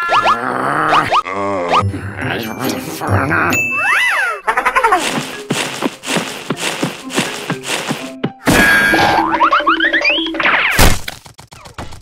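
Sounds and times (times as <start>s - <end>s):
background music: 1.6s - 9.5s
rising stepped sweeps: 5.0s - 8.2s.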